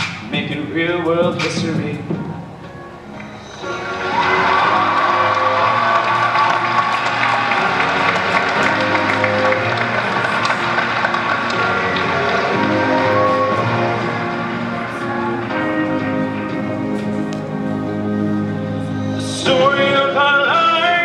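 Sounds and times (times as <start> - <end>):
instrumental backing track: 0.0 - 21.0
audience applause and cheering: 2.8 - 17.4.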